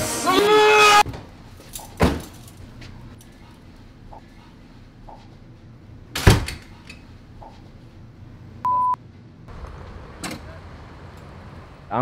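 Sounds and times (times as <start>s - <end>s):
high censor bleep: 8.7s - 9.0s.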